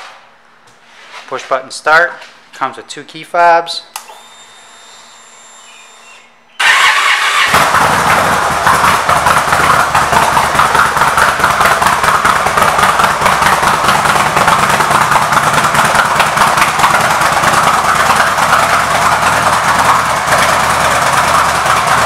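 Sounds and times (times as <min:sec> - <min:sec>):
motorcycle engine idling: 0:07.4 - 0:22.0.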